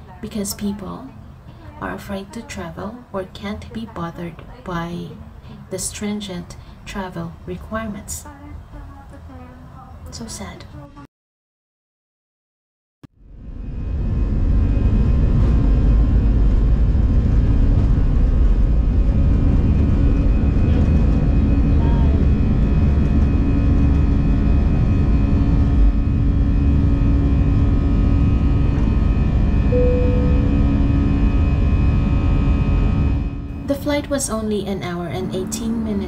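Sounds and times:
engine whine: 13.1 - 36.0
airliner engines roaring: 13.3 - 36.0.

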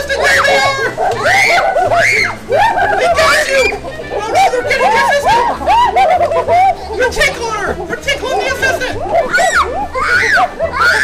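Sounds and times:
girl shrieking with laughter: 0.2 - 3.8, 5.2 - 6.9, 9.0 - 11.0.

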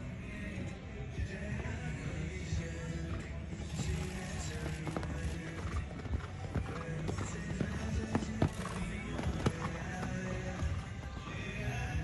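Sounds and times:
background music: 0.0 - 12.0
horse hoofbeats on sand: 2.6 - 12.0.

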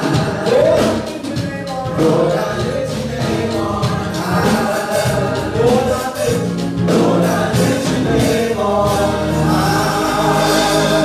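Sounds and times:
drums: 0.0 - 11.0
gospel choir singing: 0.0 - 11.0
keyboard: 0.0 - 11.0
man singing lead: 0.0 - 11.0.

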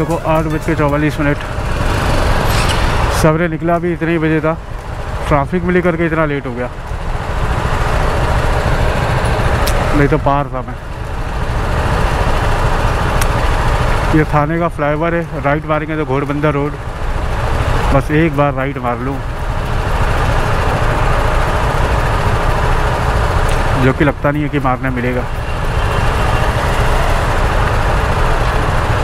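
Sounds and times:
motorcycle engine: 0.0 - 29.0
road noise: 0.0 - 29.0
surrounding traffic: 0.0 - 29.0.

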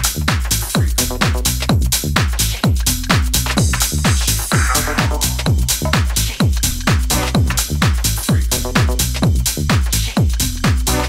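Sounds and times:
four-on-the-floor kick drum: 0.0 - 11.0
hi-hats: 0.0 - 11.0.

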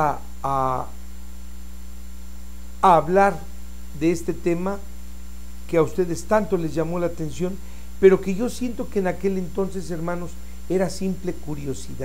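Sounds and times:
man speaking a syllable: 0.0 - 0.9, 2.8 - 4.8, 5.7 - 12.0
electrical mains hum: 0.0 - 12.0.

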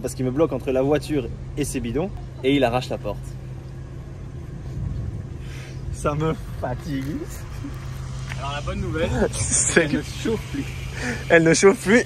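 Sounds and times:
car engine idling: 0.0 - 12.0
low outdoor rumble: 0.0 - 12.0
faint hiss: 4.5 - 12.0.

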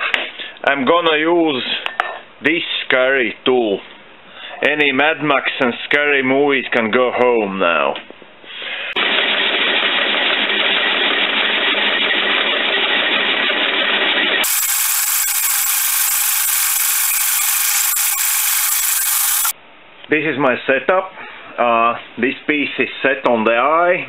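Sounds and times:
machine tool cutting aluminium: 14.4 - 19.5.

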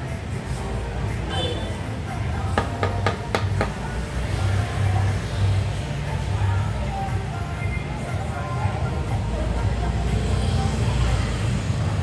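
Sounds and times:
sharp knocks: 2.6 - 3.8.

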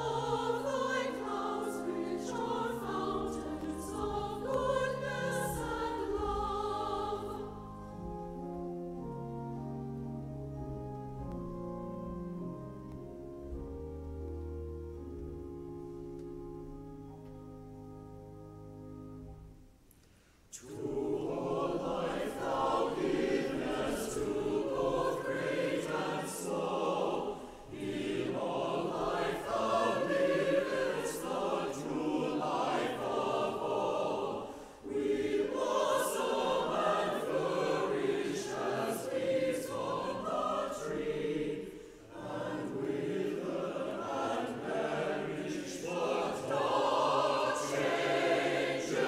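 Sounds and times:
choir singing an anthem: 0.0 - 8.3, 20.5 - 49.0.

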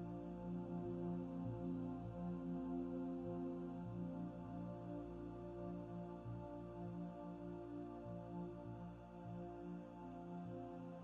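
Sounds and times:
quiet ambient music: 0.0 - 11.0.

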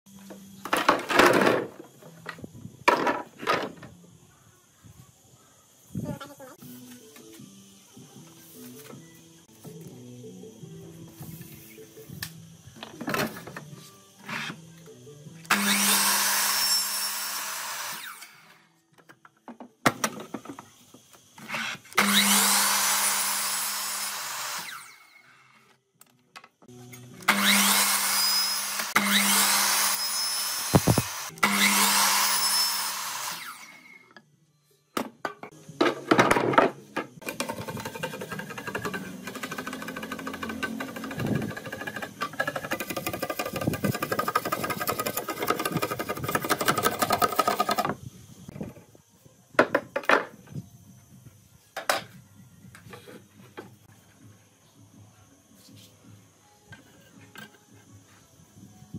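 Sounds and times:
miter saw cutting bamboo: 15.5 - 18.7, 21.4 - 25.6, 27.0 - 34.1, 37.2 - 48.0
saw motor hum: 21.5 - 25.5, 26.8 - 34.0, 37.4 - 47.6.

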